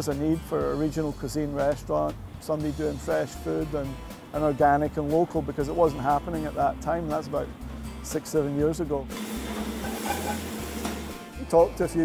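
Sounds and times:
food sizzling in a pan: 0:09.1 - 0:11.4.

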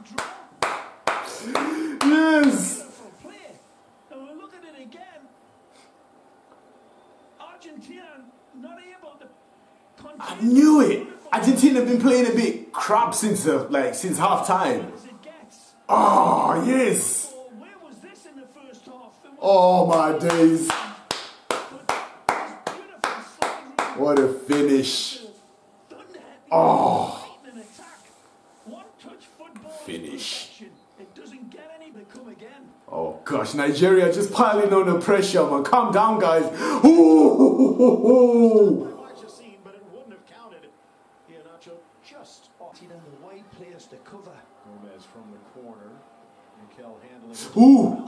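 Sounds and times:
man clapping hands: 0:00.0 - 0:02.7, 0:19.8 - 0:24.7
man drawn-out vocal sound: 0:01.3 - 0:02.9, 0:15.9 - 0:17.3, 0:26.5 - 0:27.4, 0:36.5 - 0:39.2.

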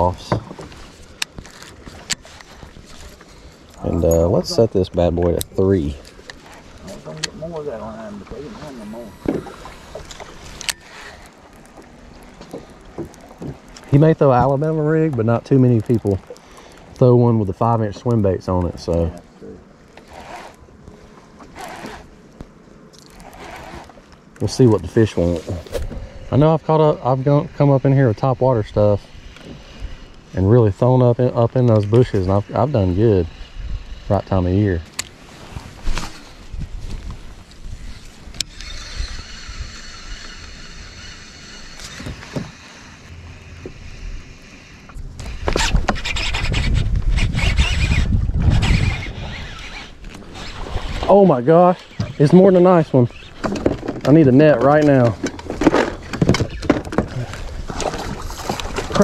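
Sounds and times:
fishing reel whirring: 0:08.9 - 0:12.2, 0:37.8 - 0:53.5
wind buffeting microphone: 0:35.6 - 0:41.0, 0:45.0 - 0:59.0.

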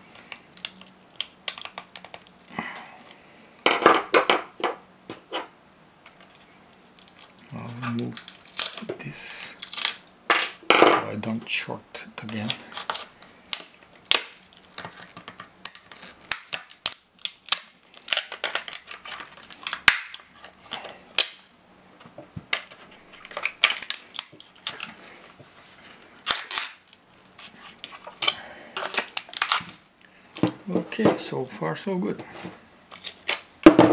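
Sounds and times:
plastic case cracking and snapping: 0:00.2 - 0:02.5, 0:06.8 - 0:09.0, 0:09.6 - 0:10.6, 0:12.3 - 0:21.5, 0:22.4 - 0:25.0, 0:26.1 - 0:29.8.

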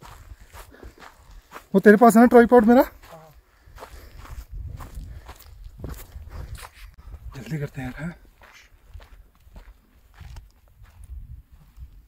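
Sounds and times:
footsteps on grassy ground: 0:00.0 - 0:12.0.

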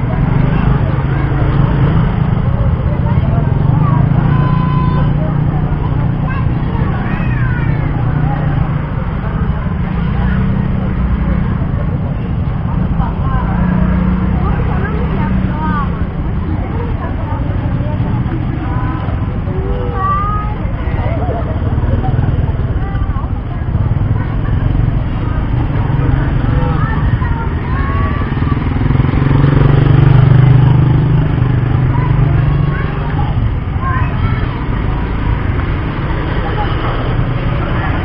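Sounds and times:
many people talking: 0:00.0 - 0:38.0
motor vehicle engines running: 0:00.0 - 0:38.0.

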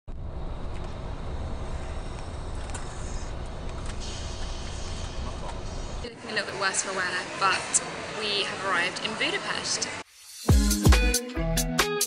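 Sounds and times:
coach engine and road noise: 0:00.1 - 0:10.1.

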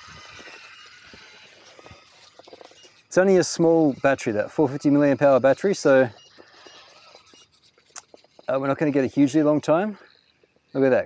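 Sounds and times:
toy car crunching over rough ground: 0:00.0 - 0:11.0.

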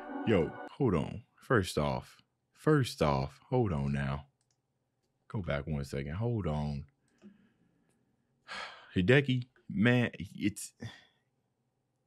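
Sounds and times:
man speaking: 0:00.2 - 0:04.3, 0:05.3 - 0:06.8, 0:08.5 - 0:11.0.

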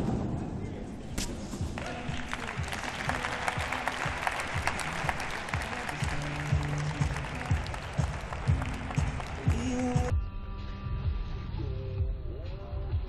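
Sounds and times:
background music: 0:00.0 - 0:13.0
audience applause: 0:01.8 - 0:10.1.

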